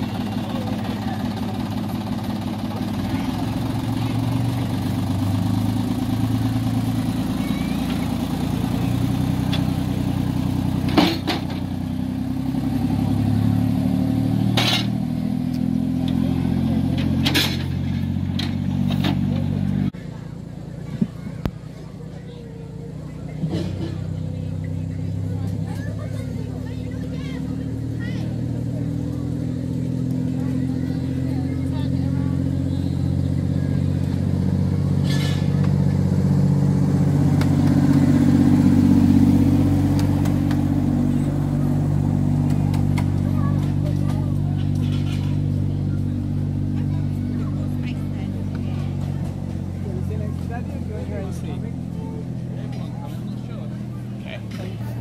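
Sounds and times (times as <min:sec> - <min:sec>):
diesel locomotive engine running: 0:00.0 - 0:55.0.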